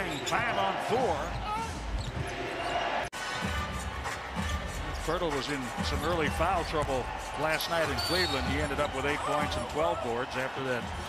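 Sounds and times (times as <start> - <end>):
piped-in music: 3.2 - 6.6.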